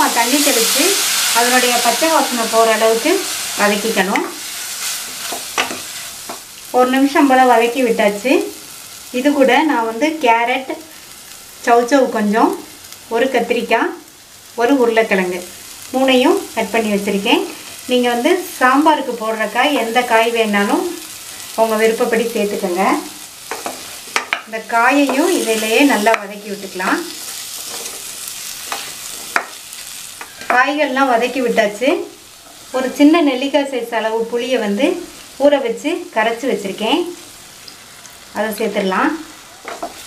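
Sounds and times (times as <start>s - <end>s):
woman talking: 0.0s - 4.3s, 6.8s - 8.5s, 9.2s - 10.8s, 11.7s - 14.0s, 14.6s - 21.0s, 21.6s - 23.1s, 24.5s - 27.1s, 30.5s - 32.1s, 32.8s - 37.2s, 38.4s - 39.3s
woman narrating: 0.0s - 4.4s, 6.8s - 8.6s, 9.2s - 10.8s, 11.6s - 14.0s, 14.6s - 21.0s, 21.6s - 23.1s, 24.5s - 27.2s, 30.5s - 32.1s, 32.7s - 37.2s, 38.4s - 39.3s
vegetables sizzling: 0.0s - 40.0s.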